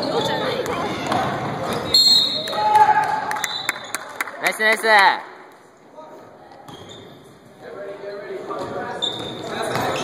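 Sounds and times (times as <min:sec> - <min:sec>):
voices of players: 0:00.0 - 0:10.0
shoe squeaks on gym floor: 0:06.5 - 0:07.4, 0:08.1 - 0:10.0.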